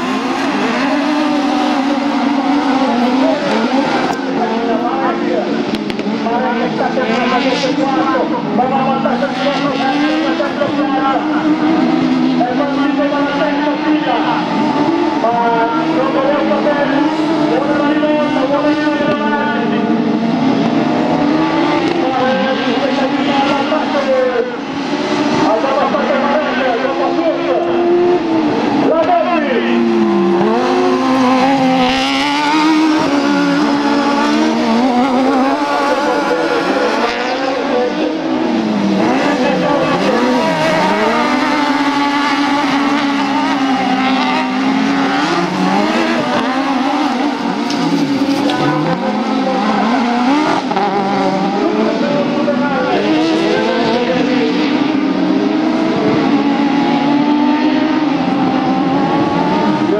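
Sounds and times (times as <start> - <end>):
racing buggy engines revving: 0.0 - 59.9.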